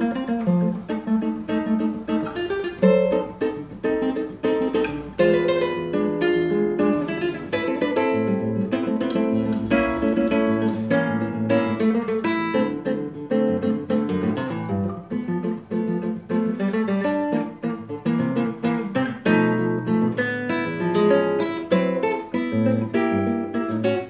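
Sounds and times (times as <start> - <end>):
fingerstyle classical guitar: 0.0 - 24.0.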